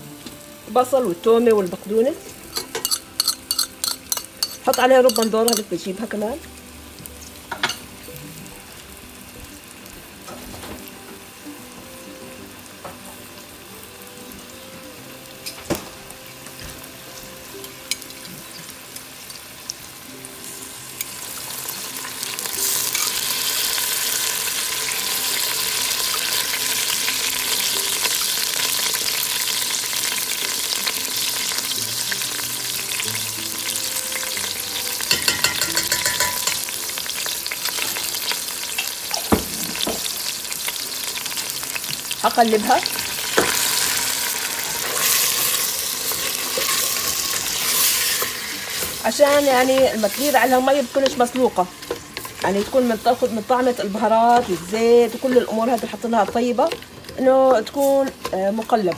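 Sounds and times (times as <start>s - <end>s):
vegetables sizzling in oil: 0.0s - 58.9s.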